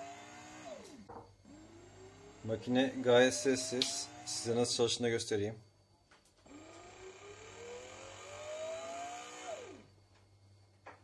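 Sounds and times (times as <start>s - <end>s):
bread maker motor whine: 0.0s - 4.9s, 6.3s - 11.0s.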